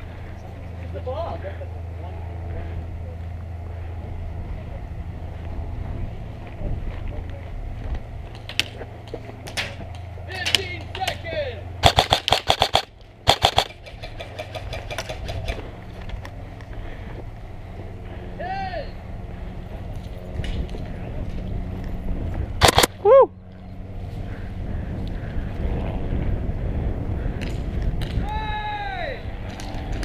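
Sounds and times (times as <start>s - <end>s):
airsoft rifle firing: 11.8s - 15.2s, 22.6s - 23.0s.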